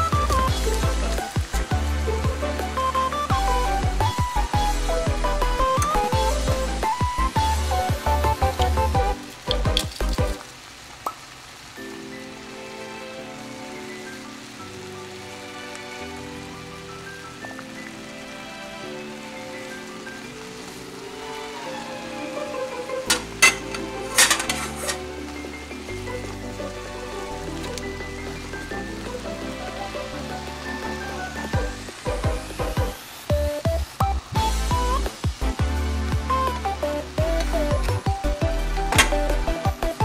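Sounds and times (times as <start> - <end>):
shrimp sizzling in a pan: 0.0 - 40.0
utensil clinking against pan: 23.1 - 25.0.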